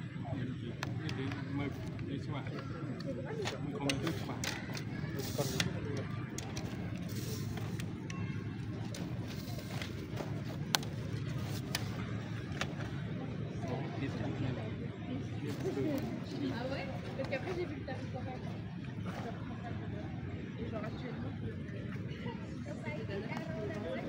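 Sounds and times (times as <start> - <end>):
indistinct low voices: 0.0 - 24.0
outdoor background noise: 0.0 - 24.0.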